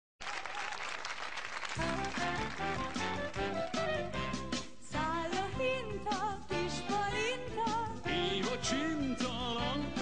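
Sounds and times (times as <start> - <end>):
audience applauding: 0.2 - 3.8
song music: 1.8 - 10.0.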